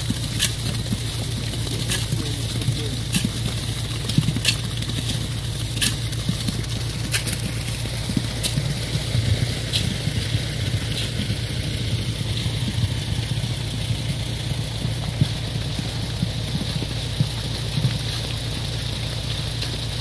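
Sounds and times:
diesel engine running: 0.0s - 20.0s
wet concrete sliding down chute: 0.0s - 20.0s.

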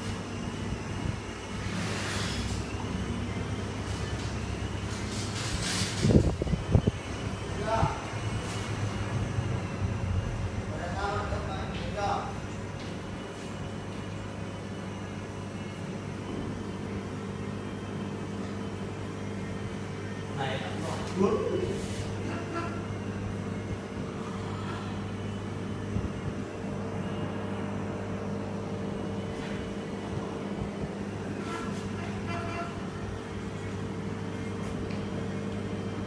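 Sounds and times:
aquarium air pump humming: 0.0s - 36.0s.

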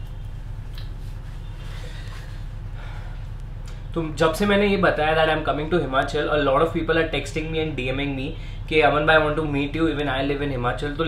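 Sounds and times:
steady low hum: 0.0s - 11.0s
person breathing: 1.5s - 3.4s.

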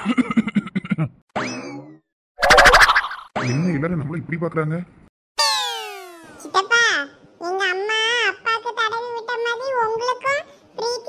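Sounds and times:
cartoon boing: 5.4s - 6.6s.

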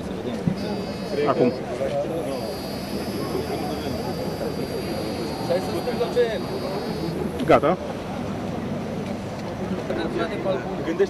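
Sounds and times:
breathalyzer high-pitched beep: 0.6s - 1.6s, 2.3s - 7.3s.

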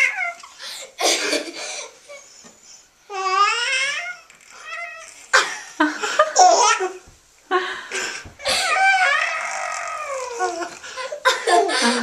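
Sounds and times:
baby laughing: 5.3s - 7.0s, 8.4s - 12.0s
baby squealing coo: 8.4s - 10.8s.

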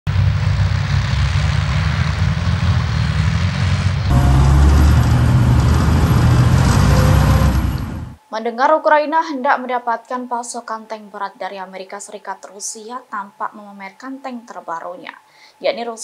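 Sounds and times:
tracked vehicle engines rumbling: 0.1s - 8.2s
track clatter: 0.2s - 8.2s.

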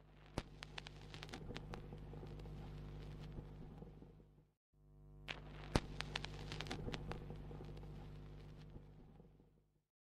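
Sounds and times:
record clicks and crackle: 0.1s - 4.1s, 5.2s - 9.2s.

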